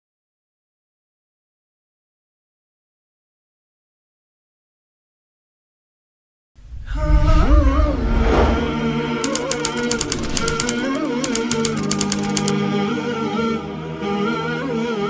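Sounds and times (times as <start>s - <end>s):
wordless humming vocals: 6.8s - 11.7s
typewriter-like clicks: 9.2s - 12.6s.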